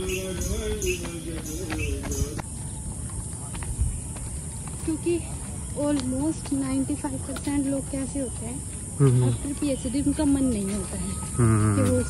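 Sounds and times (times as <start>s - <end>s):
distant devotional singing: 0.0s - 12.0s.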